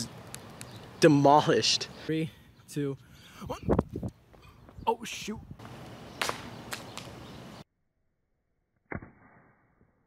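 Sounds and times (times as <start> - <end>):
outdoor background noise: 0.0 - 7.8.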